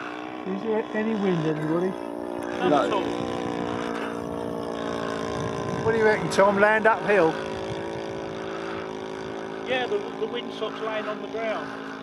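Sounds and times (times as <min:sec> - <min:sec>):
model aircraft engine running: 0:00.0 - 0:12.0.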